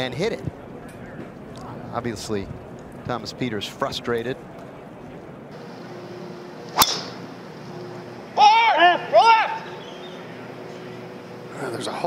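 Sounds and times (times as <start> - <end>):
faint outdoor background: 0.0 - 12.0
golf club striking ball: 6.7 - 7.2.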